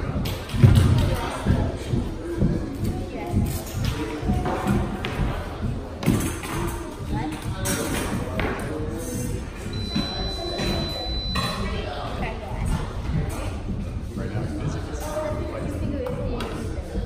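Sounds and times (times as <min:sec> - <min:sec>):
indistinct voices chattering: 0:00.0 - 0:17.0
high steady beep: 0:09.7 - 0:11.8.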